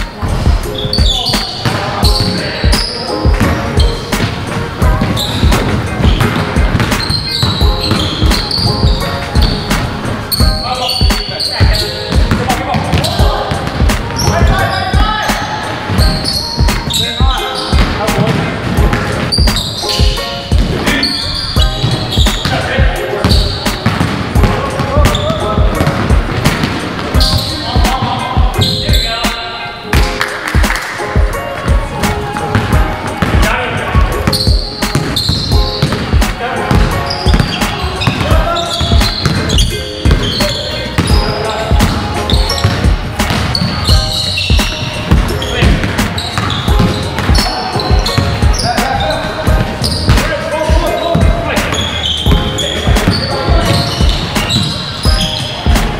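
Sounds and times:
music: 0.0 - 55.9
voices: 0.7 - 30.0, 31.3 - 55.9
basketball bouncing on wooden floor: 3.4 - 9.8, 10.4 - 14.6, 23.2 - 28.0, 34.2 - 55.9.

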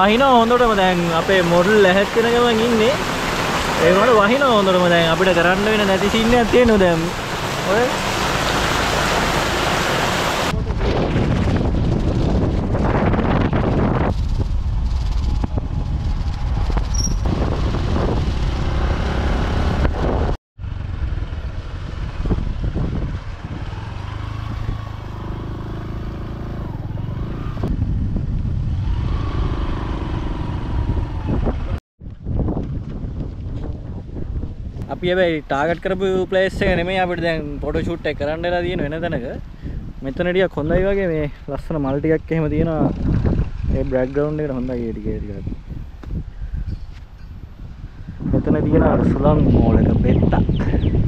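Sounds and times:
road noise: 0.0 - 51.0
heavy rain hissing: 0.5 - 10.5
wind noise: 2.8 - 51.0
motorcycle running: 10.2 - 33.4, 42.5 - 45.4.

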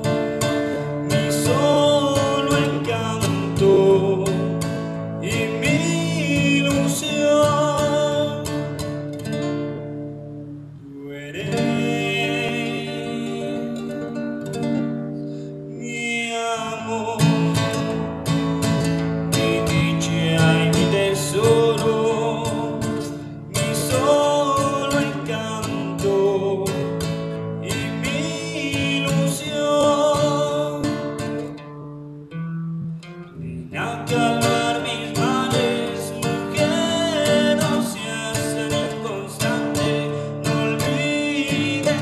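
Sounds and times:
man singing: 0.0 - 9.1, 10.9 - 14.7, 15.7 - 31.6, 33.3 - 42.0
acoustic guitar: 0.0 - 42.0.

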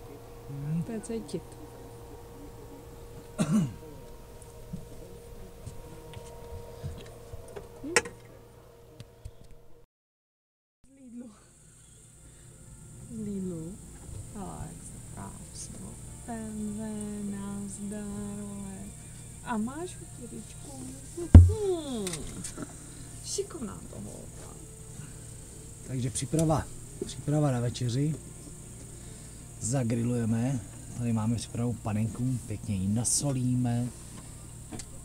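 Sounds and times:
faint steady hum: 0.0 - 9.8, 10.9 - 35.0
loud sharp thump: 21.4 - 21.8.

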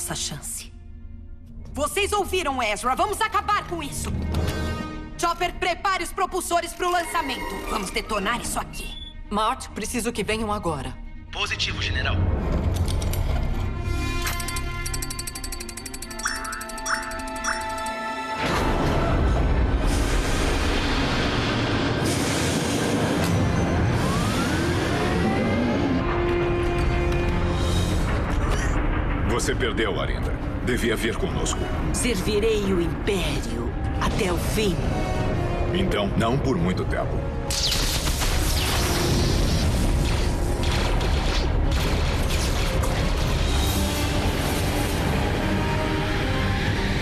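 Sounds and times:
background music: 0.0 - 47.0.

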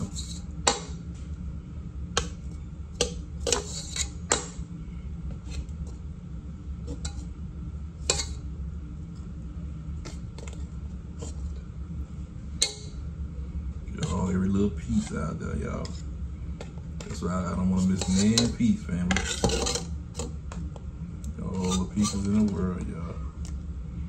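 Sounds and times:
steady low hum: 0.0 - 24.0
metal fork clinking against pan: 12.6 - 13.0.

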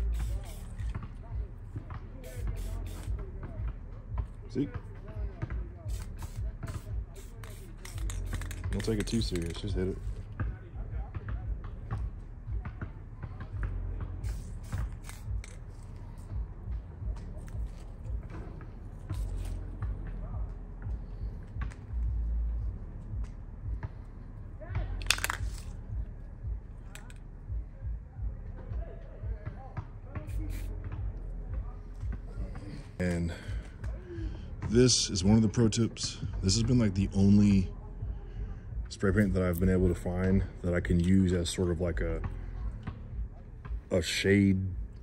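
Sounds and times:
rifle handling clicks and scrapes: 7.4 - 9.7, 14.3 - 16.3, 25.0 - 25.8, 26.9 - 27.2
constant low rumble: 7.8 - 45.0.

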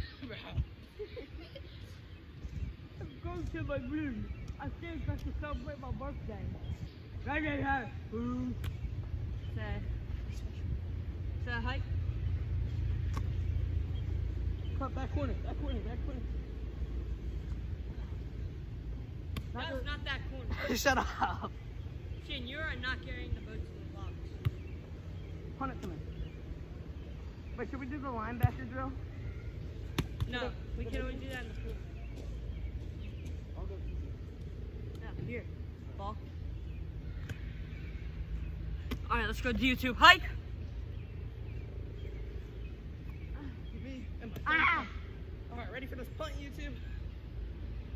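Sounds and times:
steady low rumble: 0.0 - 47.9
boy calling out: 44.4 - 45.1.

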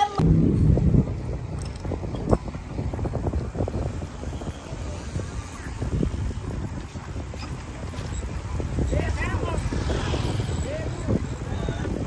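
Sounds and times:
wind rumbling on microphone: 0.0 - 12.0
bicycle knocks and rattles: 0.6 - 4.4, 5.7 - 12.0.

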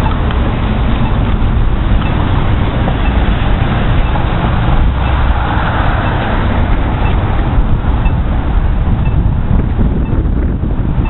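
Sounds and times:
traffic rumble: 0.0 - 11.0
wind buffeting microphone: 0.0 - 11.0.

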